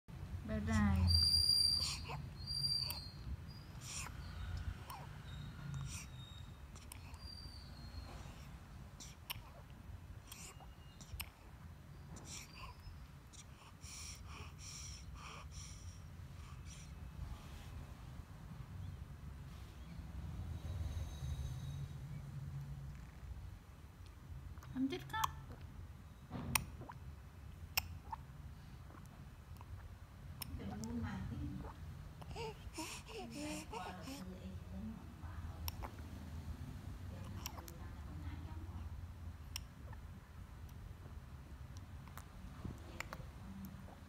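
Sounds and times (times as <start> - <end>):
baby sucking and swallowing: 9.0 - 11.5, 26.5 - 27.1, 28.8 - 30.6, 37.2 - 37.7
baby breathing: 13.4 - 17.0, 32.2 - 34.4.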